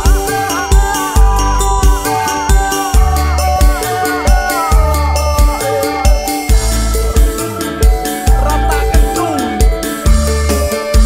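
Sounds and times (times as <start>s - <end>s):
band music with sliding melody: 0.0s - 11.0s.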